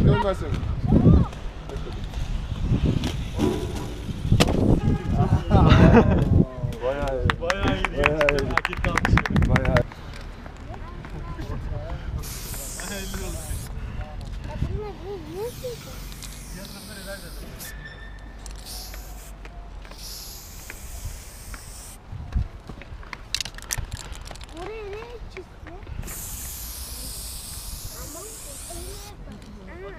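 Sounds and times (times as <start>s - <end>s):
spray-paint can hissing: 3.0s - 4.7s, 12.2s - 13.7s, 15.3s - 17.8s, 18.4s - 22.0s, 26.0s - 29.2s
people laughing loudly: 5.4s - 6.3s.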